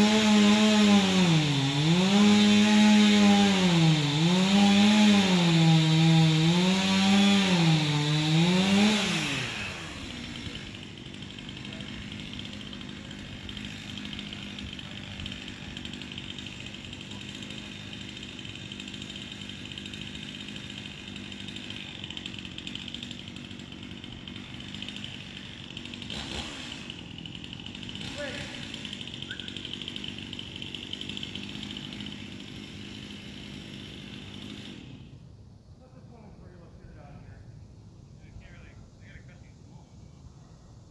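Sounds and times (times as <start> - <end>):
chainsaw cutting and idling: 0.0 - 35.3.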